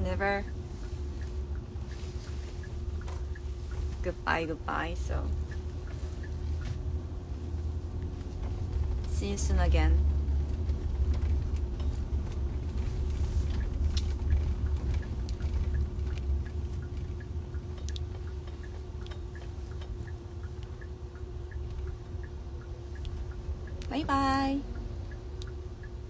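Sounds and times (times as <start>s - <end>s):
car rumbling inside cabin: 0.0s - 26.0s
faint ticking: 0.0s - 26.0s
steady hum: 0.0s - 26.0s.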